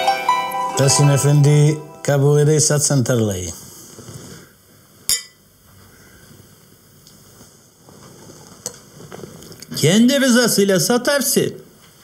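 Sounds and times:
wine glasses clinking: 5.1s - 5.4s.

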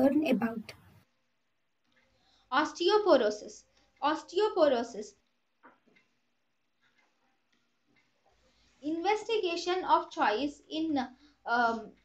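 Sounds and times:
person speaking: 0.0s - 1.0s, 8.8s - 12.0s.

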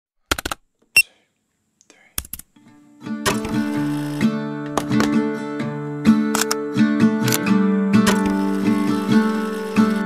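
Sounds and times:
strummed acoustic guitar music: 2.6s - 10.0s
sharp clicks: 8.1s - 9.9s.

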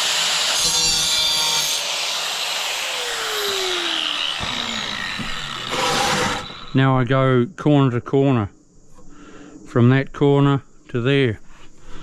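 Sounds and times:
angle grinder cutting tile: 0.0s - 6.8s.

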